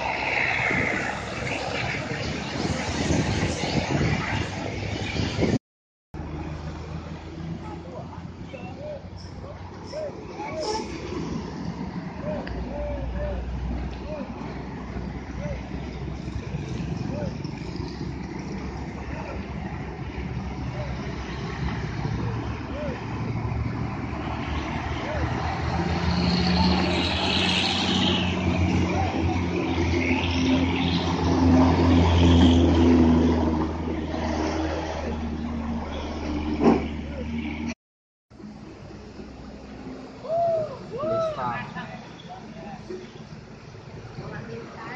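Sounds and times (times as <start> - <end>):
truck engine passing close: 0.0 - 5.6, 6.2 - 37.8.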